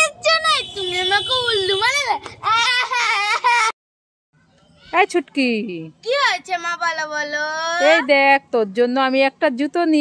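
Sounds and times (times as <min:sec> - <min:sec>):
girl wailing cry: 0:02.5 - 0:03.7.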